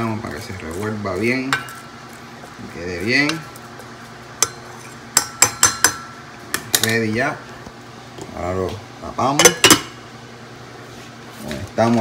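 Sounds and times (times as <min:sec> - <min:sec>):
spoon knocking on metal pot: 0:04.4 - 0:06.9.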